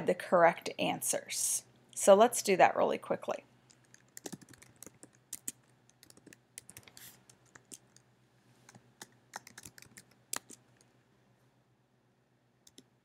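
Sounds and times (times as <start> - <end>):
typing on computer keyboard: 3.7 - 8.0, 9.0 - 10.6.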